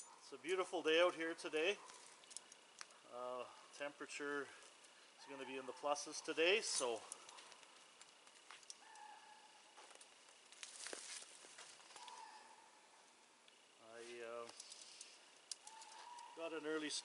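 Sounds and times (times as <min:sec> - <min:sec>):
light clicks of wire: 0:01.8 - 0:03.0, 0:06.7 - 0:09.1, 0:14.4 - 0:16.4
faint rustling in brush: 0:10.3 - 0:12.4.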